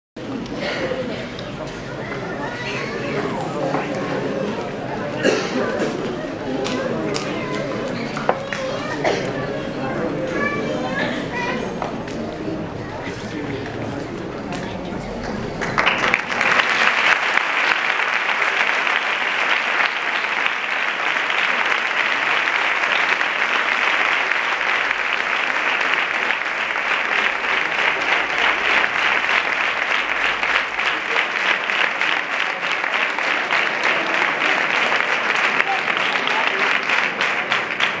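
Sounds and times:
large audience applauding: 15.2 - 38.0.

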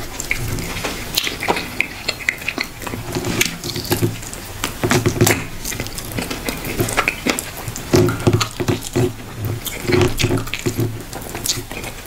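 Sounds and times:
wet chewing sounds: 0.0 - 12.0.

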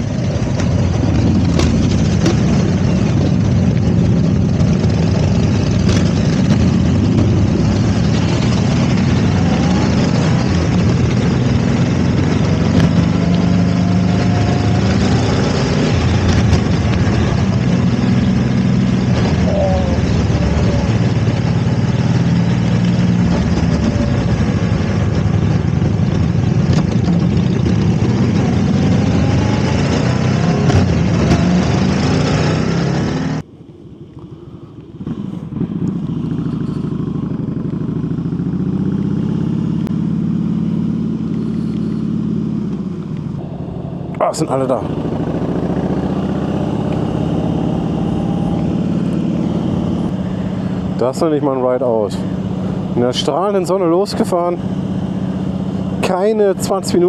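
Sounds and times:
motorcycle engine running: 0.0 - 57.0
wind and road rush: 0.0 - 57.0.

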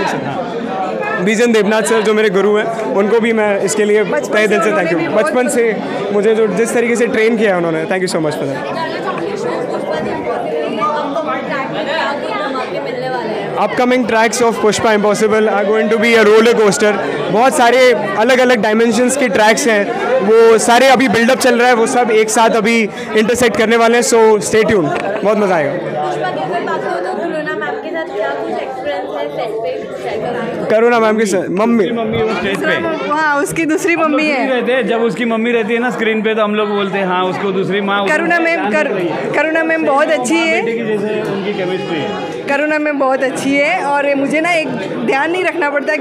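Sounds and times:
babble of voices in echoing hall: 0.0 - 46.0
crowd chatter in large room: 0.0 - 46.0.

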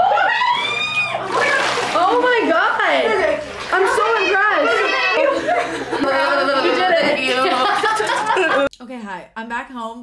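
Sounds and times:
woman squealing: 0.0 - 1.9, 4.0 - 5.4
water splashing in a tub: 0.0 - 8.4.

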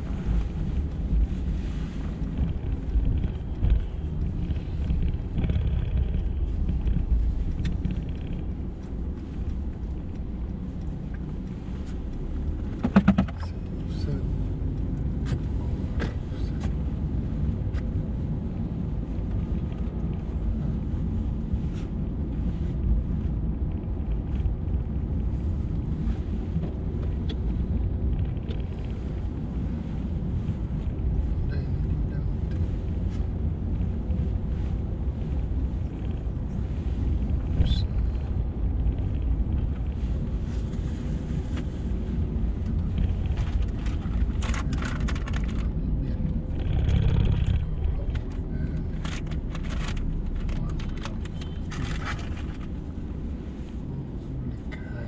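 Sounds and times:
car tyre and engine rumble: 0.0 - 55.0.

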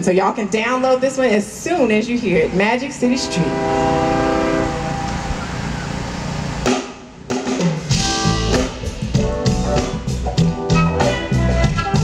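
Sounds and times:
sustained wash of sound: 3.1 - 6.7
drum kit and bass groove: 6.6 - 12.0.

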